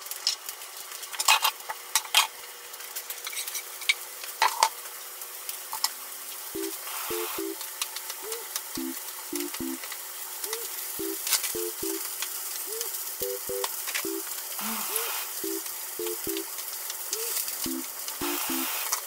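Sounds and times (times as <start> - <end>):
vegetables sizzling in a pan: 0.0 - 19.0.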